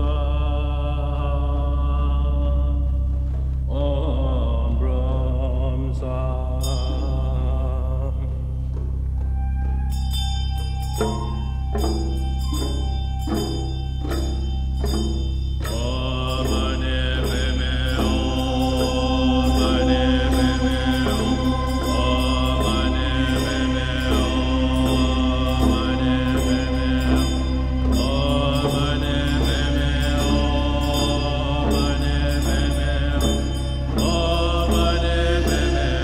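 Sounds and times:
chanted mantra: 0:00.0 - 0:08.6, 0:15.6 - 0:36.0
steady low drone: 0:00.0 - 0:36.0.

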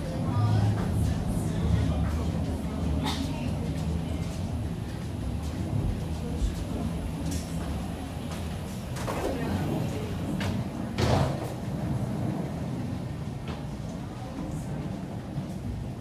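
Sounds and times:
low rumble of walkway ambience: 0:00.0 - 0:16.0.

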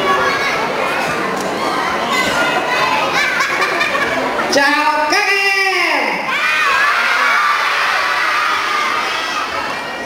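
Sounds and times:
children shouting together: 0:00.0 - 0:04.5, 0:06.2 - 0:10.0.

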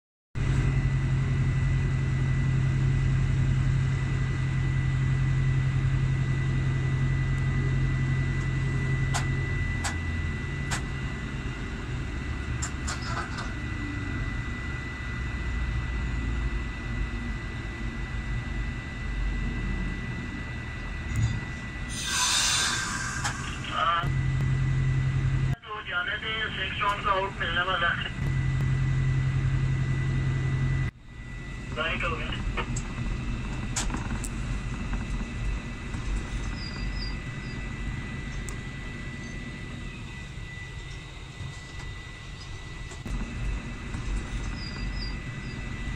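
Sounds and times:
diesel locomotive engine drone: 0:00.4 - 0:45.9.

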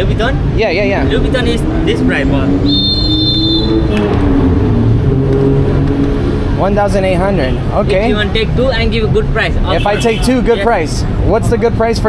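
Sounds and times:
vehicle engines running: 0:00.0 - 0:12.0.

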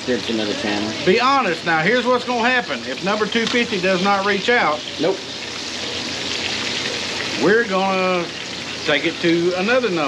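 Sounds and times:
meat sizzling in oil: 0:00.0 - 0:10.0.

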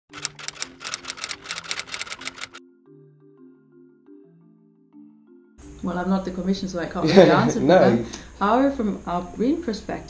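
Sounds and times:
typewriter key clacks: 0:00.1 - 0:02.6
soft music of low notes: 0:00.1 - 0:10.0.

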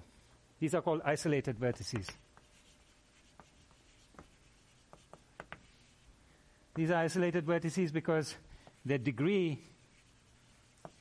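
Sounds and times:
chalk tapping and scraping: 0:01.4 - 0:07.2, 0:08.6 - 0:11.0.

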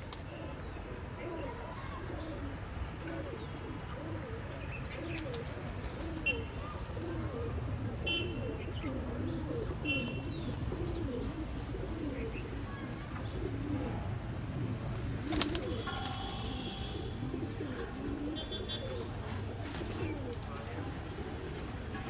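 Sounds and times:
pigeons cooing: 0:00.0 - 0:21.8.

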